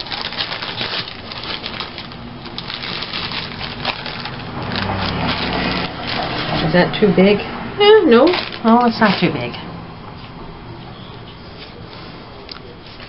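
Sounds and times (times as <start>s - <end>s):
plastic bag crinkling: 0.0s - 7.0s, 8.0s - 9.6s.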